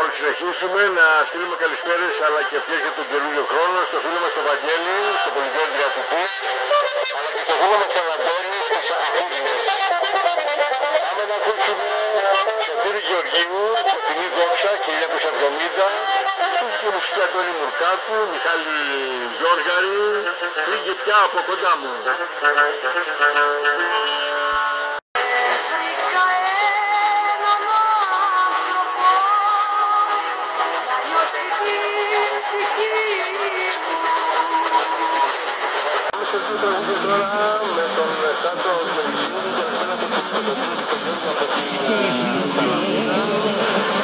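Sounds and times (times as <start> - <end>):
voice talking on am radio: 0.0 - 10.3, 11.0 - 24.1, 30.1 - 44.0.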